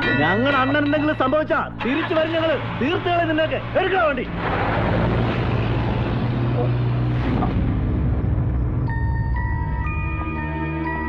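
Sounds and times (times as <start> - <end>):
road noise: 0.0 - 11.0
vehicle engine hum: 1.7 - 10.9.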